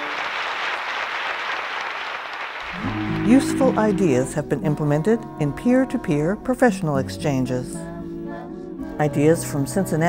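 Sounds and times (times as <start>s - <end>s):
audience applauding: 0.0s - 4.3s
music: 2.7s - 10.0s.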